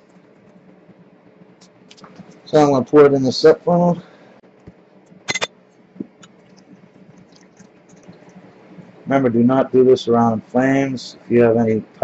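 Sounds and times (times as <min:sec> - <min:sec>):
glassware clicking: 0:05.3 - 0:05.5.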